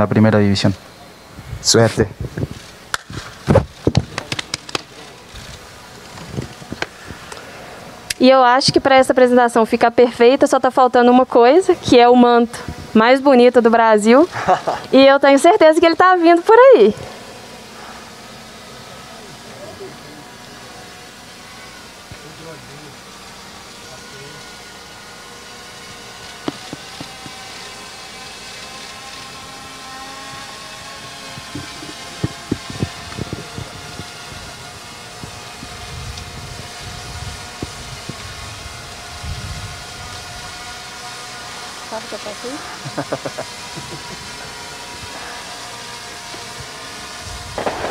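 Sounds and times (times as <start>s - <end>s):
drone propellers whining: 0.0s - 47.9s.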